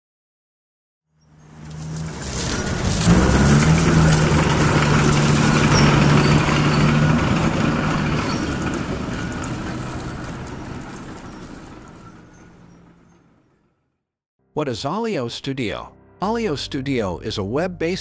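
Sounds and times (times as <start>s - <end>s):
heavy machine engine rumble: 1.4s - 13.5s
coins jingling and sliding: 1.5s - 12.8s.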